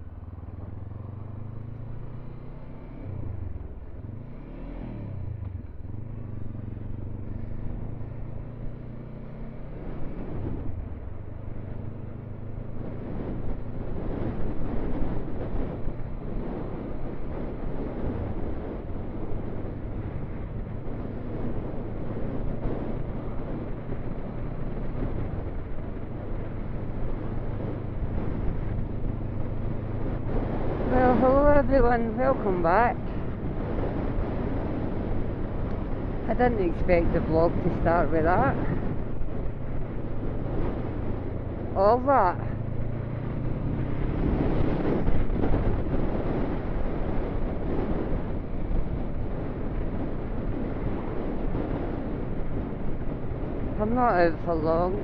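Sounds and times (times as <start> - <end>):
wind and road noise: 0.0 - 55.0.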